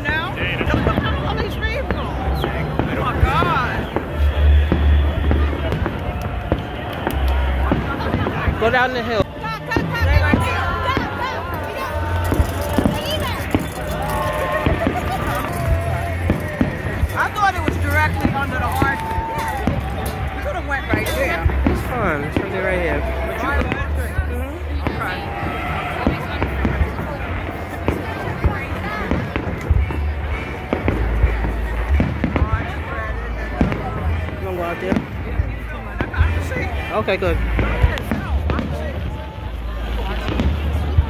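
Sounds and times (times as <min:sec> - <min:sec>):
crowd voices: 0:00.0 - 0:41.0
fireworks booming and crackling: 0:00.0 - 0:41.0.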